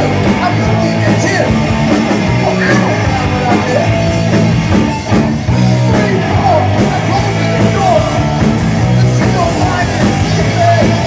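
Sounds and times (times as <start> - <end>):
distorted electric guitars: 0.0 - 11.0
drum kit: 0.0 - 11.0.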